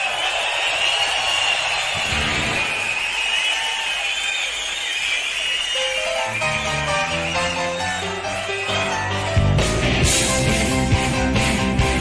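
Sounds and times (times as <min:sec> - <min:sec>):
shrill whistles: 0:00.0 - 0:09.2
crowd cheering: 0:00.0 - 0:12.0.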